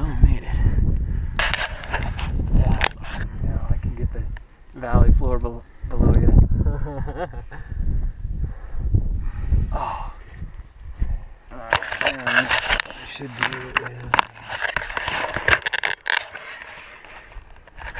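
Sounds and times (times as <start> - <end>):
wind rumbling on microphone: 0.0 - 17.9
camera handling scrapes and clicks: 1.4 - 3.3, 11.7 - 17.9.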